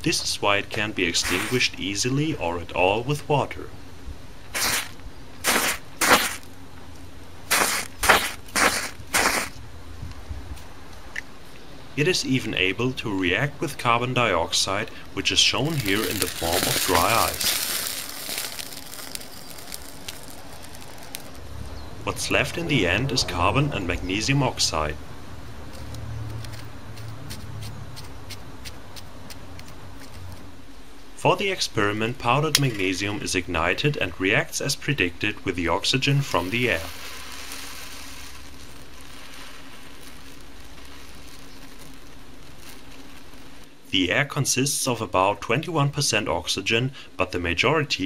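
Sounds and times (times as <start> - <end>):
burning magnesium hissing: 1.1 - 1.8, 4.5 - 6.6, 7.4 - 9.6, 14.7 - 22.4, 35.8 - 43.9
sharp crackles: 1.2 - 1.7, 4.5 - 6.6, 7.5 - 9.6, 15.4 - 21.7, 36.0 - 43.8.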